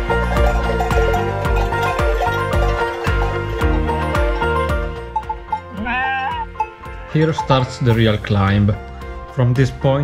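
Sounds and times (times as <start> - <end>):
background music: 0.0 - 10.0
sheep bleating: 5.7 - 6.6.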